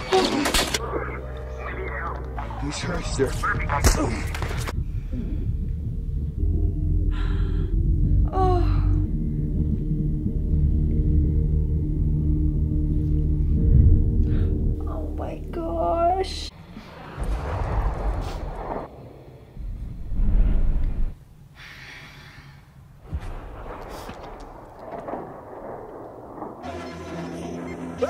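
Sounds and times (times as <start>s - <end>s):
loud low rumble: 4.7s - 15.5s, 17.0s - 21.2s, 23.2s - 26.7s.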